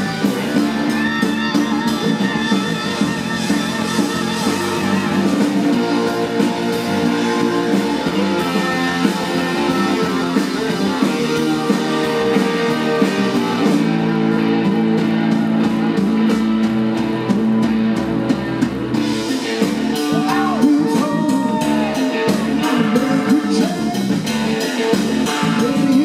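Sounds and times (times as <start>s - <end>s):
drum kit: 0.0s - 26.0s
electric bass: 0.0s - 26.0s
electric guitar: 0.0s - 26.0s
keyboard: 0.0s - 26.0s.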